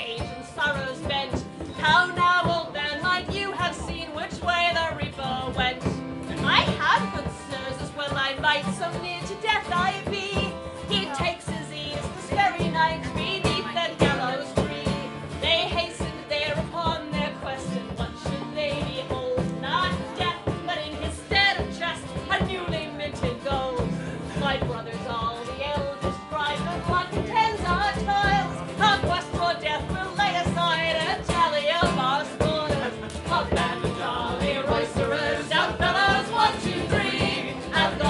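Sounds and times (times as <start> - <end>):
strummed acoustic guitar: 0.0 - 38.0
woman singing a folk ballad: 0.0 - 38.0.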